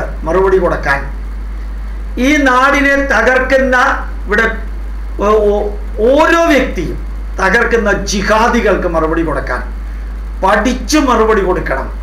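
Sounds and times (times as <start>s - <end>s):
man speaking: 0.0s - 1.2s, 2.2s - 9.8s, 10.4s - 12.0s
steady low hum: 0.0s - 12.0s.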